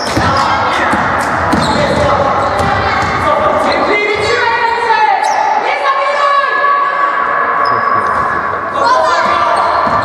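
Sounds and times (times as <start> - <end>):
sneakers squeaking on wooden floor: 0.0 - 3.4, 7.6 - 10.0
basketball bouncing: 0.0 - 4.4, 9.2 - 10.0
voices: 0.0 - 10.0.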